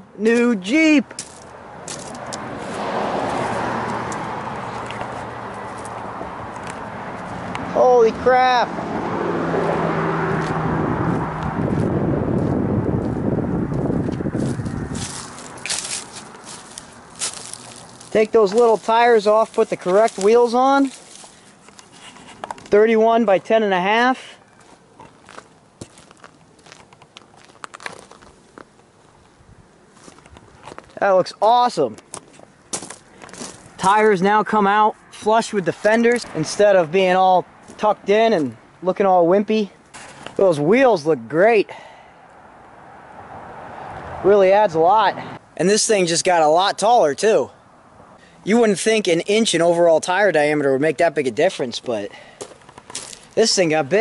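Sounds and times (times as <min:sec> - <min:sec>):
footsteps crunching on gravel: 0:01.1 - 0:07.6, 0:10.3 - 0:22.9, 0:24.6 - 0:31.0, 0:31.7 - 0:34.2, 0:37.6 - 0:38.5, 0:50.9 - 0:54.0
vehicle passing: 0:01.2 - 0:26.8, 0:32.5 - 0:38.9, 0:41.7 - 0:45.7.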